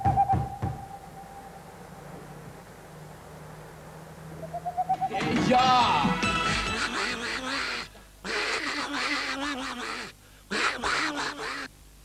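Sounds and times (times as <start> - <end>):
owl hooting rapidly: 0.0 - 1.7, 4.4 - 5.2, 6.6 - 11.7
low steady hum: 0.0 - 12.0.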